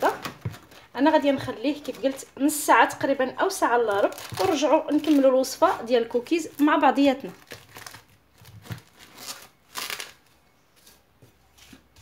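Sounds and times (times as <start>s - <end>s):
cling film rustling and crinkling: 0.0s - 2.5s, 3.5s - 12.0s.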